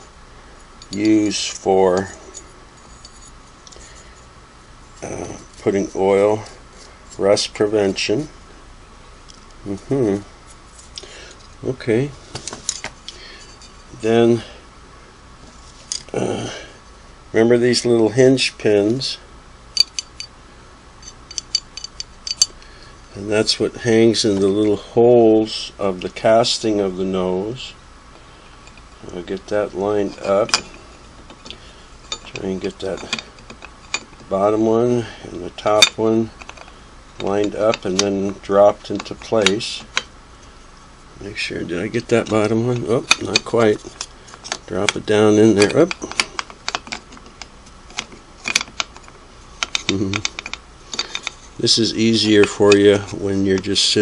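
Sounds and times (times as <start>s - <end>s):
metal cover clicking: 45.6s - 51.4s.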